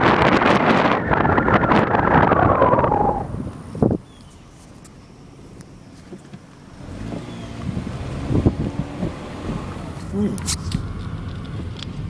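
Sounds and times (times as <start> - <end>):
wind on microphone: 0.0 - 4.4, 7.6 - 9.8
car engine and road noise: 0.0 - 12.0.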